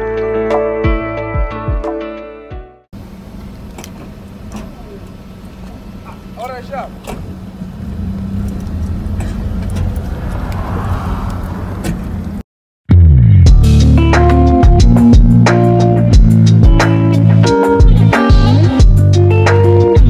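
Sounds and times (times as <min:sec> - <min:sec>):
car road and engine rumble: 0:03.0 - 0:12.4.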